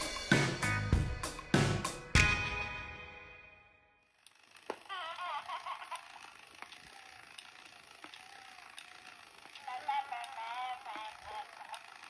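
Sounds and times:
toy motor gears clicking: 0:04.0 - 0:12.0.

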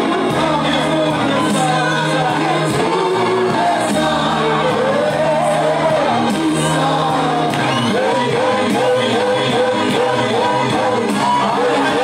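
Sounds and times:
group singing gospel song: 0:00.0 - 0:12.0.

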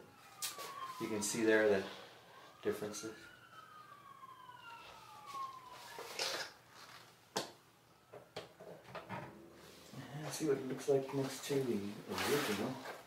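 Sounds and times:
faint siren wailing: 0:00.0 - 0:12.1.

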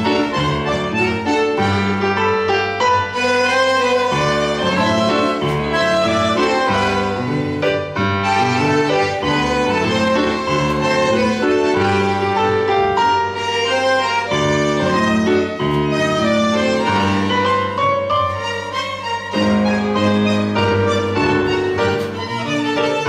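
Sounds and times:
bandoneon: 0:00.0 - 0:23.0
bowed violins: 0:00.0 - 0:23.0
electric piano: 0:00.0 - 0:23.0
plucked double bass: 0:04.0 - 0:12.8.

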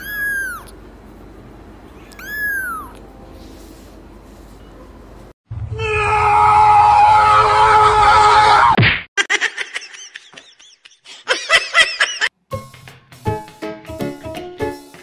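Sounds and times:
music: 0:12.4 - 0:15.0.

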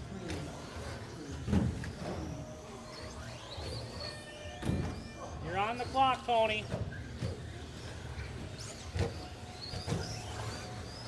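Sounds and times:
electric toy truck motors whining: 0:00.0 - 0:11.0.

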